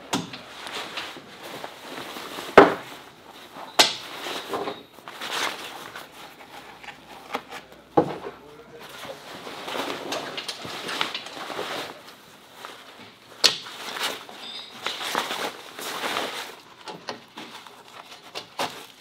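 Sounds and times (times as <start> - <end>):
fabric rustling: 0.4 - 19.0.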